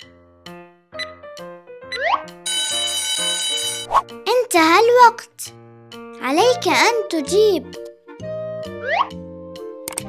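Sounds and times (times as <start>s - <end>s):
alarm clock bell ringing: 2.5s - 3.9s.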